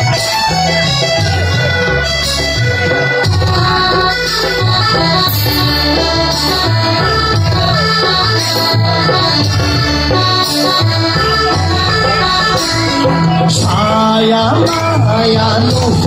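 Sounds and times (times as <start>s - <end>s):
live band through pa: 0.0s - 16.0s.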